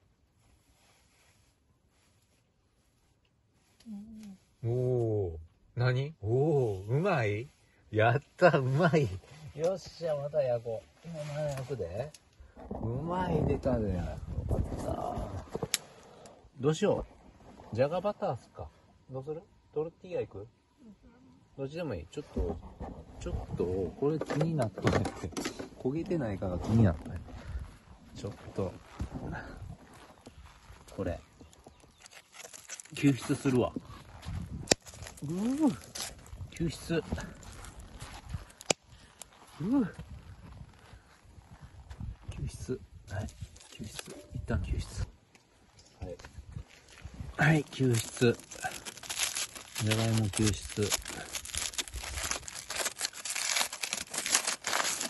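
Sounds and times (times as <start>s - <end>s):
person making wordless vocal sounds: 35.2s - 35.9s.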